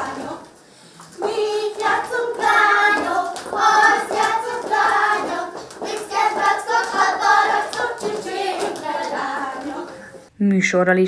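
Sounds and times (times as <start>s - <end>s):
children and women singing: 0.0s - 10.3s.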